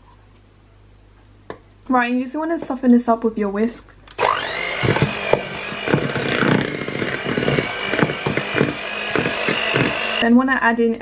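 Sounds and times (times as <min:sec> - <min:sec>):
electric hand mixer whining: 0:04.2 - 0:10.2.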